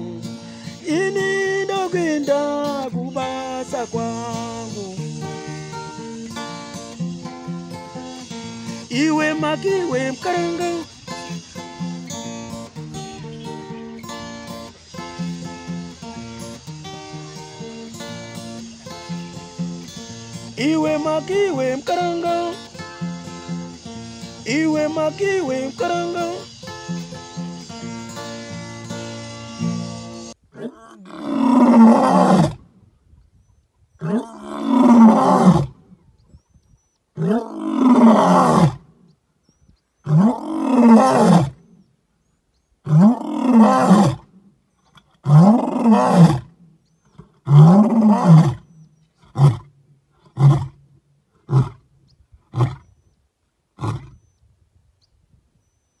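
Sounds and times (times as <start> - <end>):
lion roaring: 30.6 - 32.6, 34.0 - 35.8, 37.2 - 38.8, 40.0 - 41.6, 42.8 - 44.3, 45.2 - 46.5, 47.2 - 50.8, 51.4 - 51.8
lion grunts: 34.0 - 35.7.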